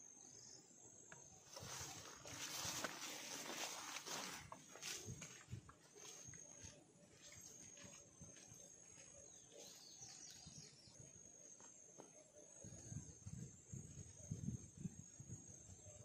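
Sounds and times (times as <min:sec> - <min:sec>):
insects buzzing: 0:00.0 - 0:16.0
grass swishing against legs: 0:01.5 - 0:07.9
footsteps in grass: 0:01.5 - 0:10.7.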